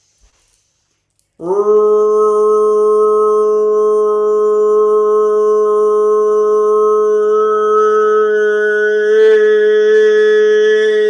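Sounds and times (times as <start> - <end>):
man toning a long note: 1.4 - 11.0.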